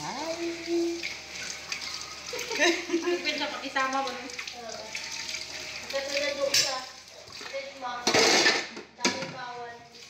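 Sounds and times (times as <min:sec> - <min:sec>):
dishes and cutlery clattering: 0:06.3 - 0:09.4.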